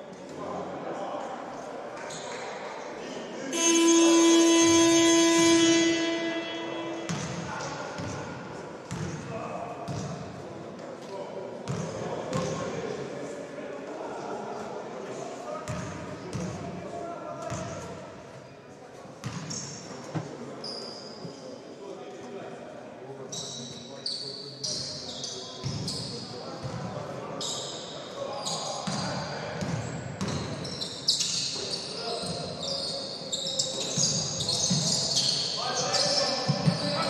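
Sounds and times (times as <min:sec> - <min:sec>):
voices echoing in a hall: 0:00.0 - 0:37.0
arena buzzer horn tone: 0:03.5 - 0:08.2.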